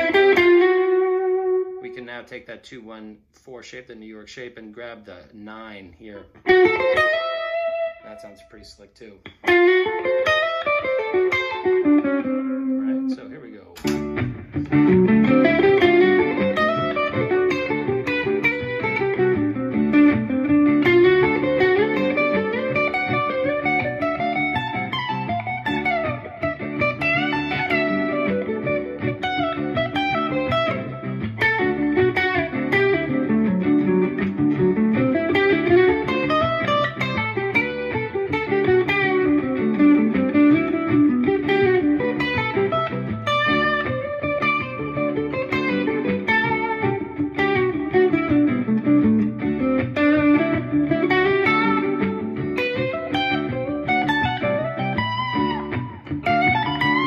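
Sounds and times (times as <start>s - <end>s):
electric guitar single-note runs: 13.9s - 57.0s.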